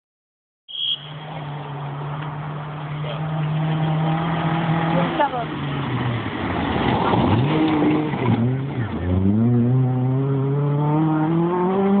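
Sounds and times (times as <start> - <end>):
rally car engine revving: 1.3 - 12.0.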